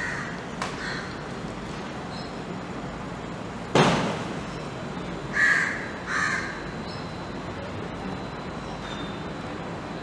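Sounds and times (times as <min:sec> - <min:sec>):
bird harsh calls: 0:00.0 - 0:01.2, 0:05.3 - 0:07.2.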